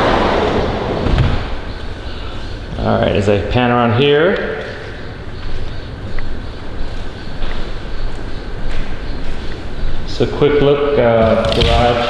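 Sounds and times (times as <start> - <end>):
steady rumbling noise: 0.0 - 12.0.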